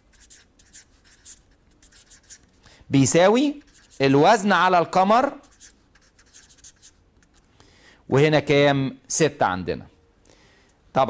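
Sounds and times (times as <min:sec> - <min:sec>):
marker writing on paper: 0:00.0 - 0:02.6, 0:03.4 - 0:04.4, 0:05.2 - 0:07.4.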